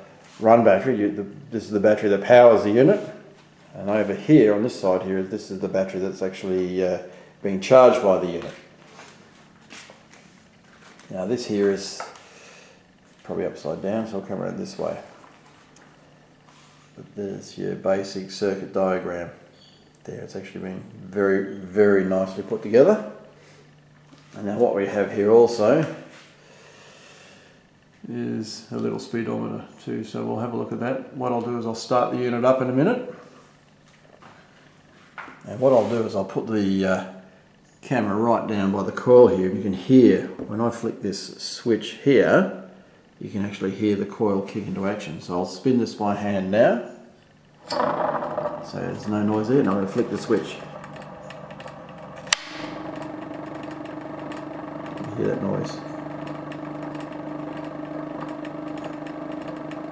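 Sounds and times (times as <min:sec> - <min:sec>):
coil humming: 0:00.0 - 0:59.9
person breathing out: 0:26.4 - 0:27.6
toggle switch click: 0:52.2 - 0:52.7.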